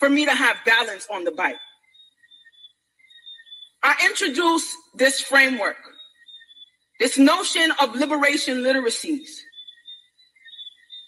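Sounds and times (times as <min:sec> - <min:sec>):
person speaking: 0:00.0 - 0:01.6.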